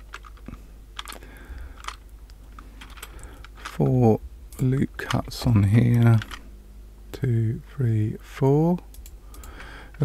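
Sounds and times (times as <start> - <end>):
computer keyboard and mouse clicks: 8.9 - 9.6.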